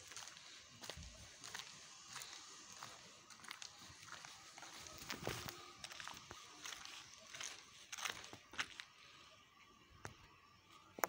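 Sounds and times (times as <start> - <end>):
footsteps on dirt road: 0.0 - 11.0
outdoor background noise: 0.0 - 11.0.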